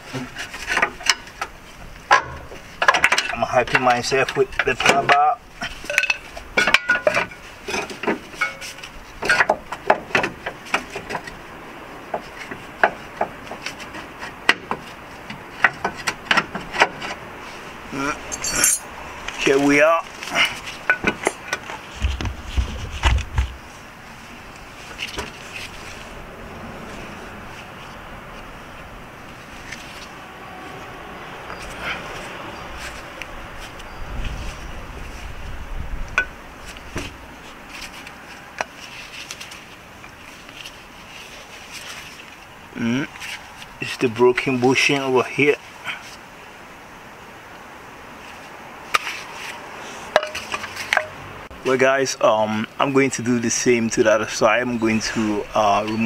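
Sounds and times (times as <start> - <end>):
handling noises: 0.0 - 46.4, 48.2 - 51.6
metal parts clinking and knocking: 5.9 - 9.6, 18.3 - 18.9
low rumbles: 16.1 - 37.7.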